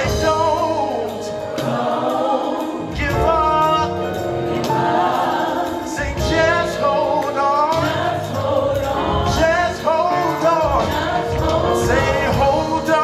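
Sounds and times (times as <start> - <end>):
band with drums and bass: 0.0 - 13.0
gospel group singing in harmony: 0.0 - 13.0.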